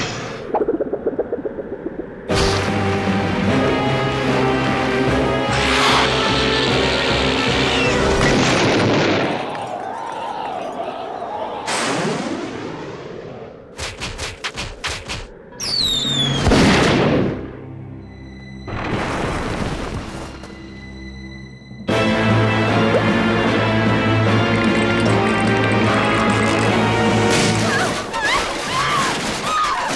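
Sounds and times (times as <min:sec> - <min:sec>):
falling whistle: 0:15.6 - 0:16.5.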